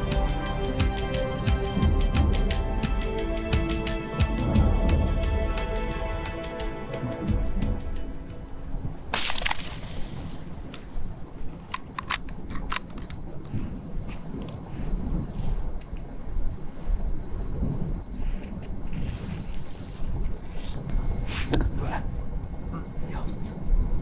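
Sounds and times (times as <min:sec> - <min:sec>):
wind noise rumble: 0:00.0 - 0:24.0.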